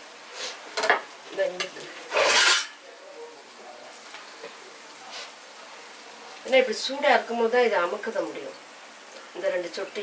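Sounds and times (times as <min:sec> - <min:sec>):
metal utensils clinking on pan: 0:00.8 - 0:04.6.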